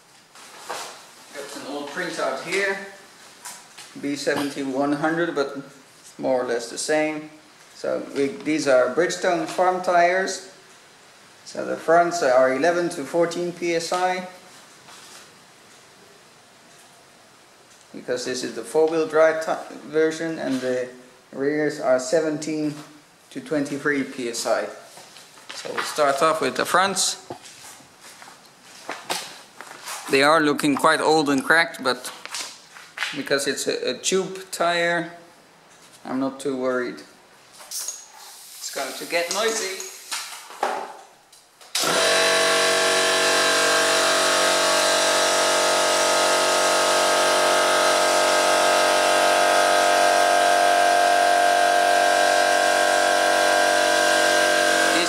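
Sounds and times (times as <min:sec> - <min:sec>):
scuffing steps: 0:27.2 - 0:30.9
footsteps on concrete: 0:27.3 - 0:30.1
air compressor motor running: 0:41.8 - 0:55.0.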